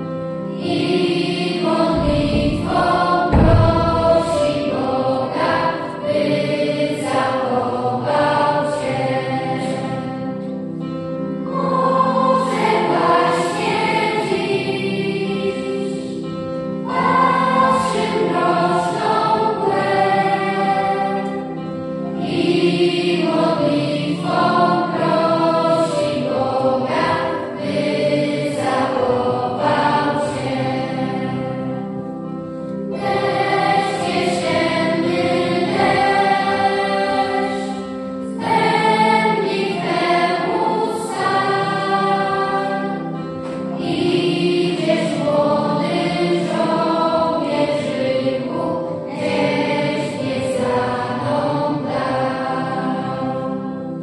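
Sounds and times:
children's choir singing: 0.0s - 54.0s.

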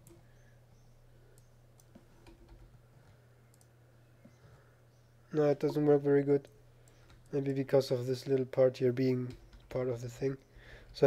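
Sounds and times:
computer mouse clicks: 1.4s - 3.7s, 6.4s - 7.4s.

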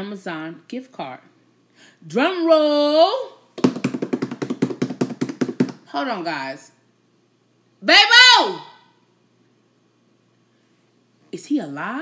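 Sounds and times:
hand drumming on tabletop: 3.6s - 5.8s.

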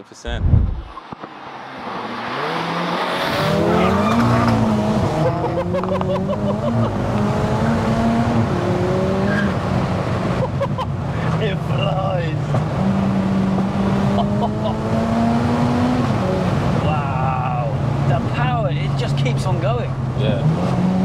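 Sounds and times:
car engine accelerating: 0.3s - 21.0s.

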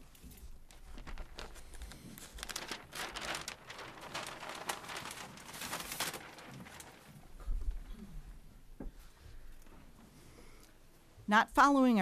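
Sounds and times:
paper sheets rustling and crinkling: 0.0s - 7.9s.

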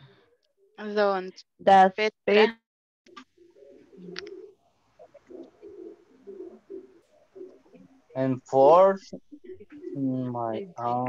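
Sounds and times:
bird cooing faintly: 3.1s - 11.0s.

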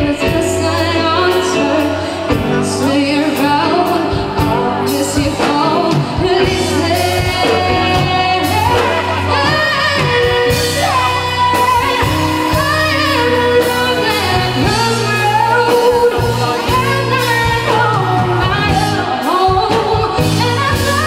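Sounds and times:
drums and bass: 0.0s - 21.0s
woman singing into microphone: 0.0s - 21.0s.

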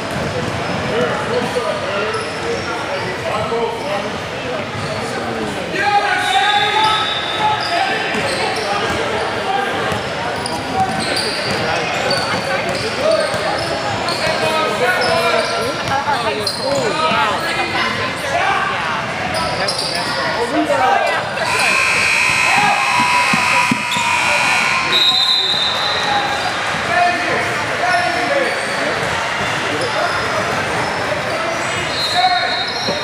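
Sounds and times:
echoing voices of players and spectators: 0.0s - 33.0s
held high-pitched tones: 21.4s - 25.2s
basketball bouncing on wooden court: 23.0s - 24.2s.

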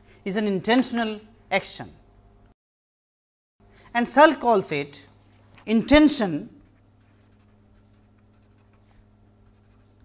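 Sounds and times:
low electrical hum: 0.0s - 2.6s, 3.6s - 10.0s
marker pen scratching paper: 6.6s - 10.0s.

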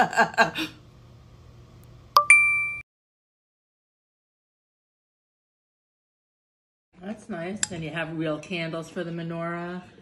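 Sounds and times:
bright bell-like ding: 2.2s - 2.8s.

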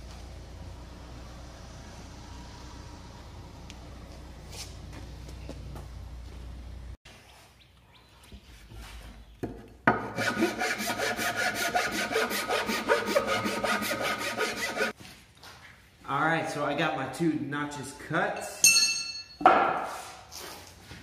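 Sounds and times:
chisel scraping wood: 9.9s - 14.9s.

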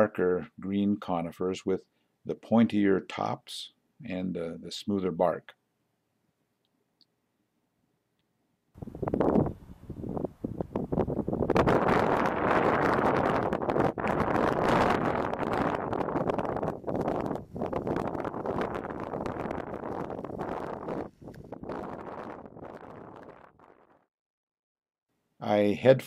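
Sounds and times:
wind buffeting microphone: 8.8s - 24.0s.

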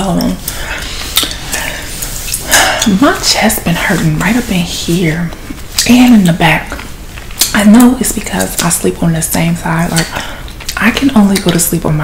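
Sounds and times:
gum chewing mouth smacks: 0.5s - 2.4s, 6.7s - 7.6s.

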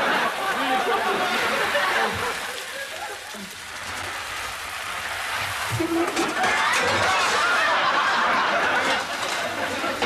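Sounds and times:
studio audience laughing: 0.0s - 3.6s, 5.9s - 10.0s.

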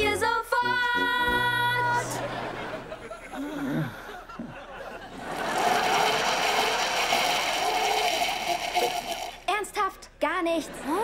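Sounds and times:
studio audience laughter: 2.1s - 9.3s, 10.6s - 11.0s.

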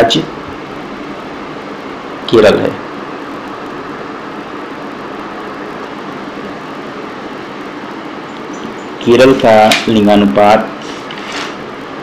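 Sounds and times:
faint hum: 0.0s - 12.0s
steady hiss: 0.0s - 12.0s.

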